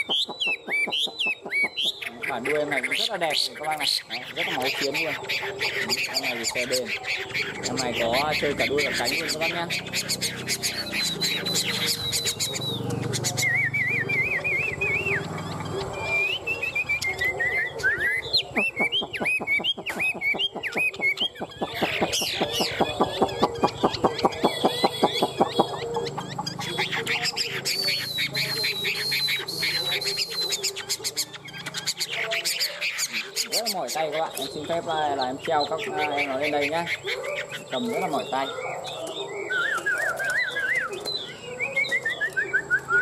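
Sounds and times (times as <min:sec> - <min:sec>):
bird singing whistled phrases: 0:00.0 - 0:43.0.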